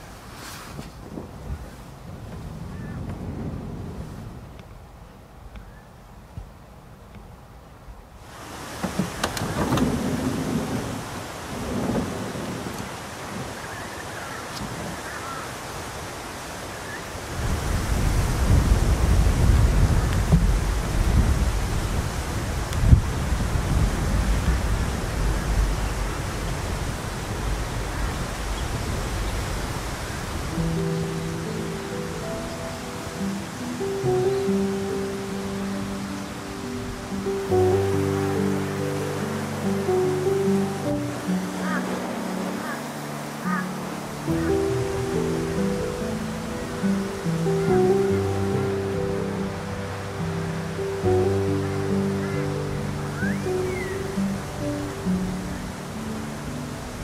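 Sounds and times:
thunder rumbling: 1.0s - 5.0s, 8.5s - 15.2s, 17.3s - 55.9s
thunder crack: 8.8s - 13.6s, 17.4s - 31.0s
soft music with held notes: 17.3s - 57.0s.

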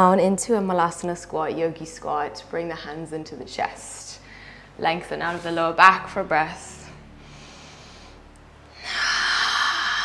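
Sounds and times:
woman exhaling: 8.8s - 10.0s.

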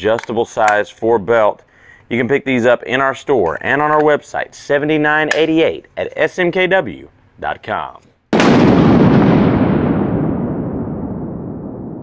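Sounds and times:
explosion boom with rumbling tail: 8.3s - 12.0s.

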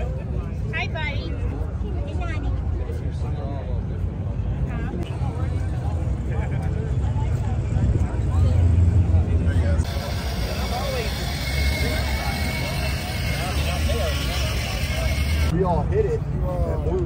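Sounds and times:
crowd chatter: 0.0s - 17.0s
low car engine rumble: 4.2s - 15.5s.

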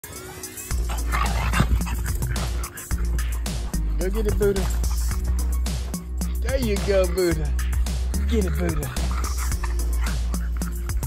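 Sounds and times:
music with heavy bass beat: 0.0s - 11.0s
dog barking: 0.3s - 3.8s.

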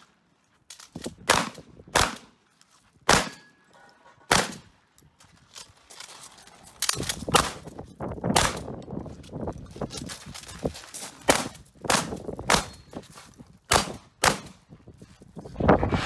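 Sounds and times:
shotgun shots: 1.2s - 2.3s, 3.1s - 3.5s, 4.3s - 4.6s.

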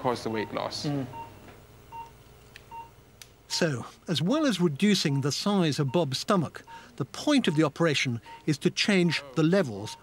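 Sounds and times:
patient monitor beeping: 0.0s - 3.0s, 4.2s - 10.0s.

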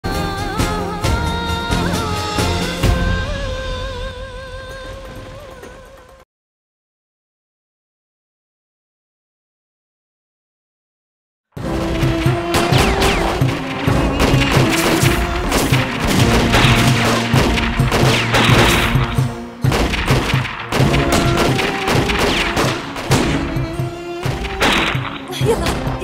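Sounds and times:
music: 0.0s - 6.2s, 11.6s - 26.0s
explosions: 11.6s - 26.0s
gunshots: 11.6s - 26.0s.

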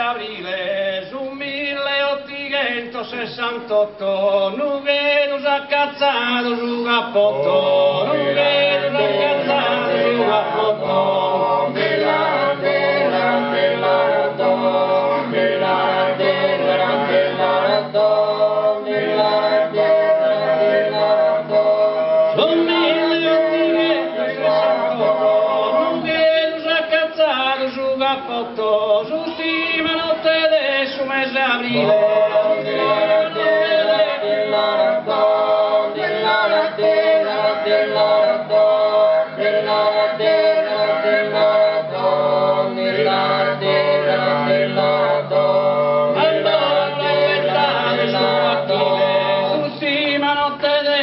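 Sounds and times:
male polyphonic a cappella singing: 0.0s - 51.0s.

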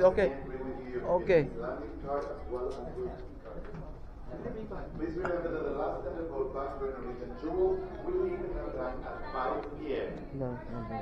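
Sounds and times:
low indistinct voices: 0.0s - 11.0s.

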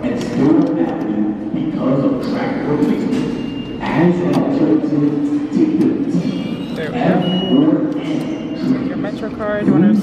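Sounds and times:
people talking: 0.0s - 10.0s
vending machine beep: 3.3s - 4.1s, 6.4s - 8.9s.

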